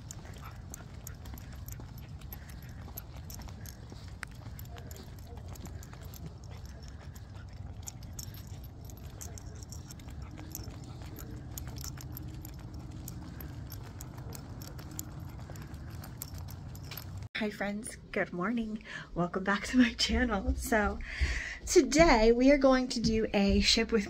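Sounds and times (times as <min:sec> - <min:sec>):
footsteps on concrete: 0:00.0 - 0:17.2
dog claws on concrete: 0:00.0 - 0:17.3
leash hardware jingling: 0:00.0 - 0:17.3
low steady rumble: 0:00.0 - 0:17.3.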